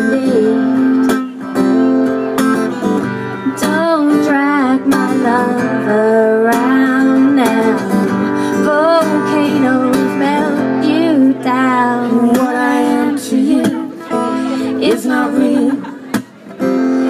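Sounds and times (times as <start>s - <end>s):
person singing: 0.0s - 1.4s, 3.4s - 16.1s
acoustic guitar strumming: 0.0s - 17.0s.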